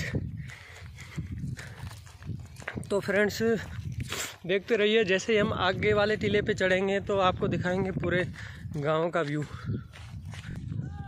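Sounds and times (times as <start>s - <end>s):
footsteps in loose sand: 0.0s - 6.5s, 7.4s - 11.0s.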